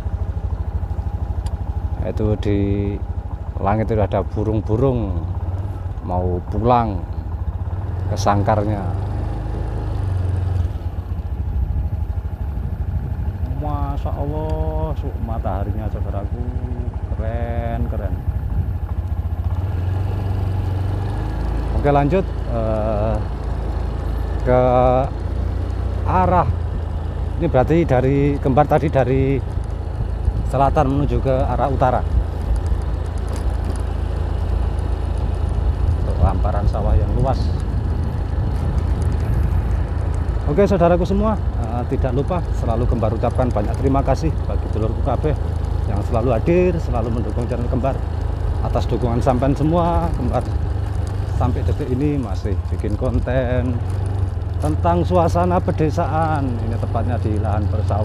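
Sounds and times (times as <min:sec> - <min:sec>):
engine running: 0:00.0 - 0:58.0
wind buffeting microphone: 0:10.9 - 0:13.8, 0:17.8 - 0:19.4, 0:35.0 - 0:43.6.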